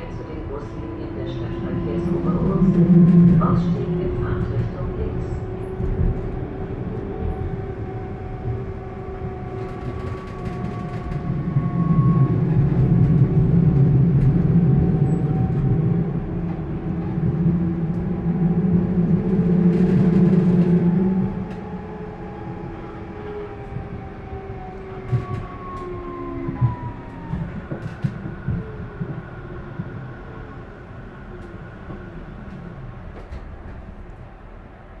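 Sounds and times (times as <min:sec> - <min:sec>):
train rolling rumble: 0:00.0 - 0:35.0.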